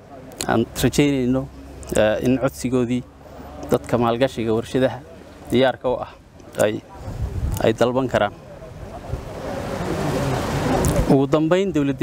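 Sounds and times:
wind rushing over microphones: 6.8s - 11.2s.

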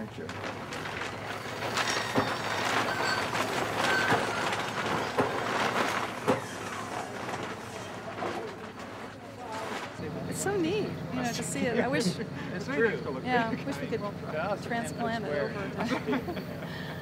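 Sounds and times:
steady background noise: 0.0s - 17.0s.

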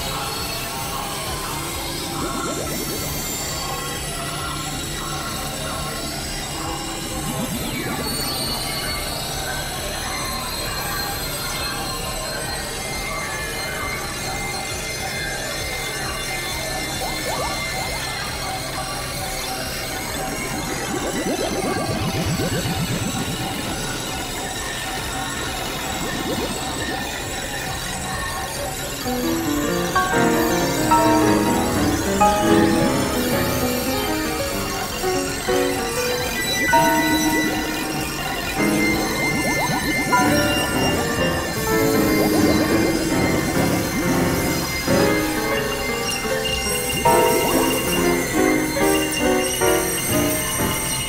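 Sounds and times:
high synthesizer tones: 0.0s - 11.9s, 16.3s - 51.0s.

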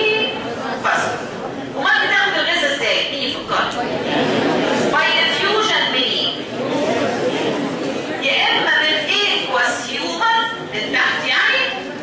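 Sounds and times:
students murmuring and calling out: 0.0s - 12.0s.

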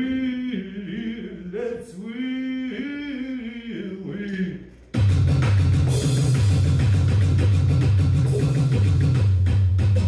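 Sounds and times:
drum kit playing: 4.9s - 10.0s
music with steady low bass: 5.0s - 10.0s.

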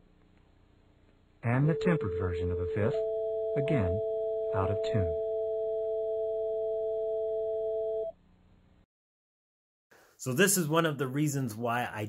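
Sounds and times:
two electronic pure tones: 1.5s - 8.1s.

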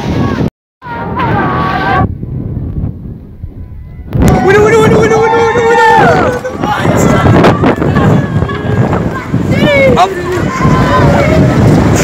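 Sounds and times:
heavy surf: 0.0s - 12.0s
wind buffeting microphone: 0.0s - 12.0s
voices shouting: 4.0s - 12.0s.

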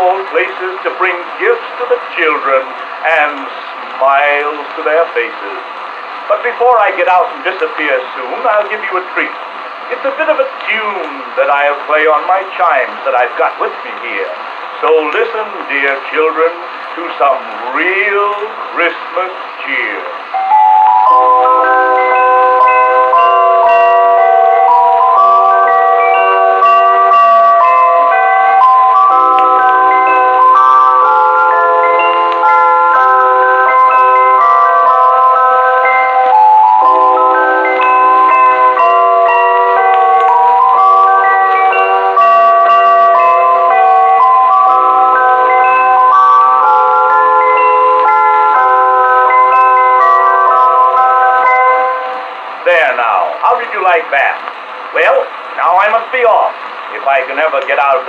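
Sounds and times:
chimes playing a tune: 19.7s - 53.6s.

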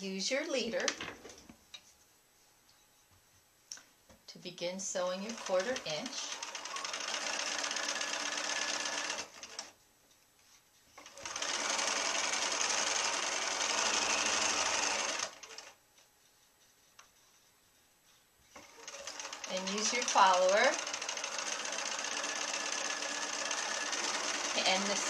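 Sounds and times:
electric sewing machine stitching: 5.3s - 9.7s, 11.0s - 15.8s, 18.6s - 25.0s.

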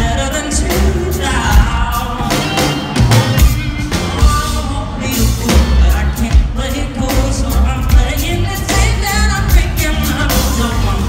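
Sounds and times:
drum kit beat: 0.0s - 11.0s
electric guitar: 0.0s - 11.0s
male lead vocal: 0.0s - 11.0s.

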